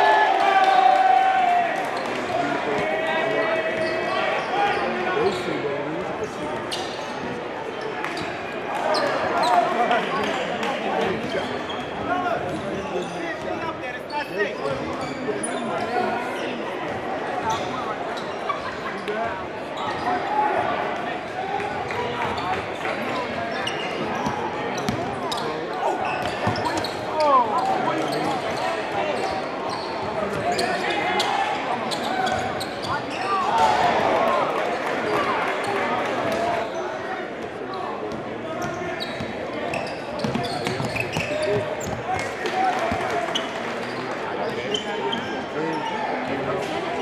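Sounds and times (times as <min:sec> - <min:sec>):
crowd chatter: 0:00.0 - 0:47.0
shoe squeaks: 0:23.5 - 0:27.4, 0:28.0 - 0:33.5, 0:38.6 - 0:42.2, 0:44.4 - 0:46.1.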